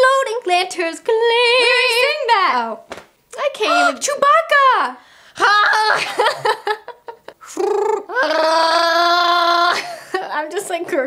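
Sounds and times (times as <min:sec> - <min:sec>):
person imitating a creature roar: 0:07.4 - 0:09.8.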